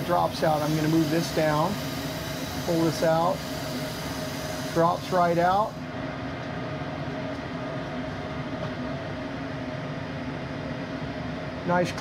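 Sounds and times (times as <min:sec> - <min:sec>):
fans humming: 0:00.0 - 0:12.0.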